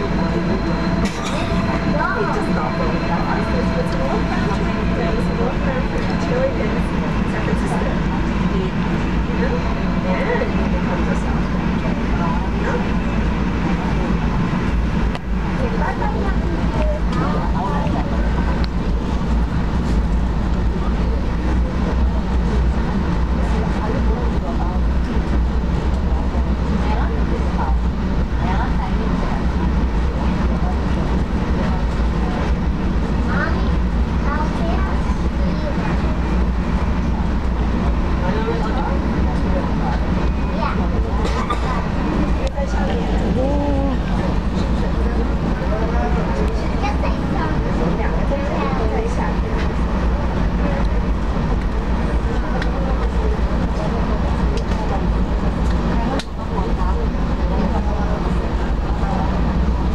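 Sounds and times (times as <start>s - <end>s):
faint passengers' voices: 0.0s - 59.9s
train low rumble: 0.0s - 59.9s.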